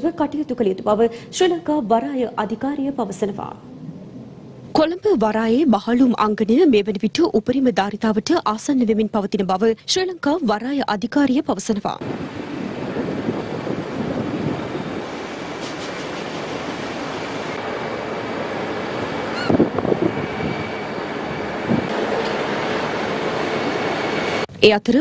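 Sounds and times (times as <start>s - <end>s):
machinery rumble and hiss: 12.0s - 24.6s
short squeal: 19.3s - 20.8s.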